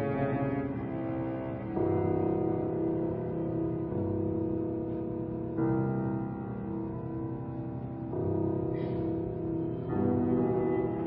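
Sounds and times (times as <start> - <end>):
cello bowed low notes: 0.0 - 11.0.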